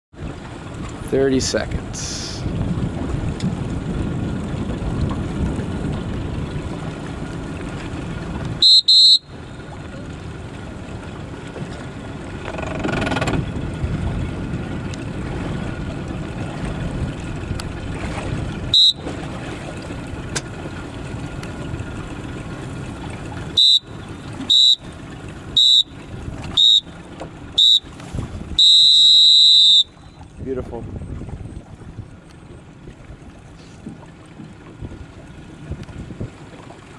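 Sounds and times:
wind: 0.0s - 36.9s
water noise: 0.1s - 36.9s
horn blasts: 8.6s - 9.6s, 18.7s - 19.2s, 23.5s - 24.9s, 25.5s - 26.9s, 27.5s - 30.2s.

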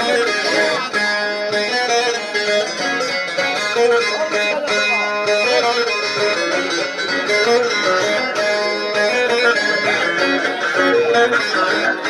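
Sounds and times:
plucked long-necked lute melody: 0.0s - 12.0s.

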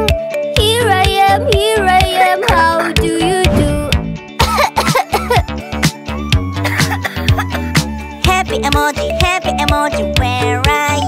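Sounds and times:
bouncy children's song: 0.0s - 5.4s, 6.7s - 11.0s
girl coughing: 4.4s - 5.6s, 6.6s - 7.7s.

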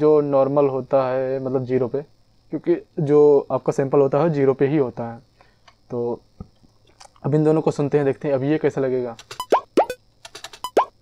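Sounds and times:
sharp clicky hits: 9.2s - 11.0s.

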